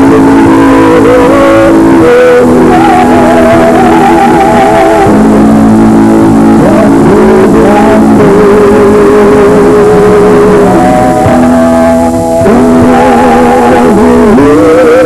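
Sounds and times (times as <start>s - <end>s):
live band with guitar: 0.0s - 15.0s
man and woman singing duet: 0.0s - 15.0s.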